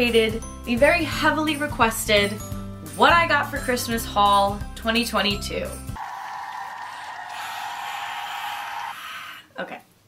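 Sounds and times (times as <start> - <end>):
person cheering woo: 6.0 - 9.4.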